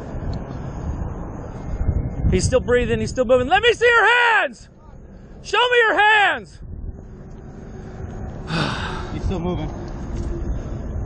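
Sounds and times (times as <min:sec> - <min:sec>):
steady low rumble: 0:00.0 - 0:04.0, 0:06.5 - 0:11.0
man sighing heavily: 0:08.5 - 0:09.2.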